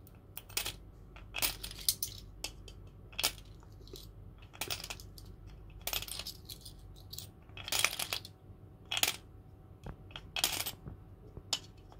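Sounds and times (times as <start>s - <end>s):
coins clinking in piggy bank: 0.4s - 9.2s, 10.1s - 10.8s.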